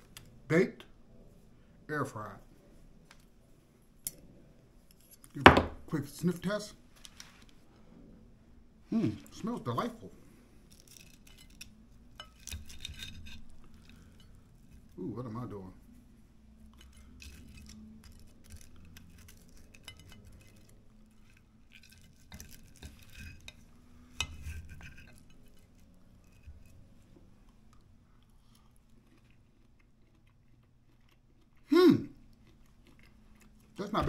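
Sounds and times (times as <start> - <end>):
knife and fork cutting breaded meat: 10.7 - 15.0, 16.6 - 27.0
cutlery scraping a plate: 10.8 - 15.0, 16.7 - 27.0
short loud voice: 31.7 - 32.1.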